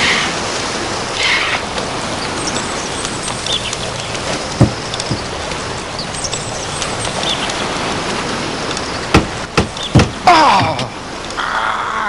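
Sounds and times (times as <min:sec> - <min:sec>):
sea surf rushing: 0:00.0 - 0:12.0.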